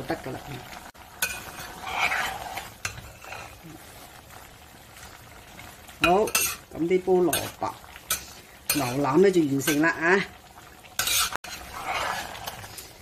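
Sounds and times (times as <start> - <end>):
sauce sizzling: 0.0 - 13.0
metal spatula scraping clay pot: 1.2 - 3.6, 11.0 - 12.9.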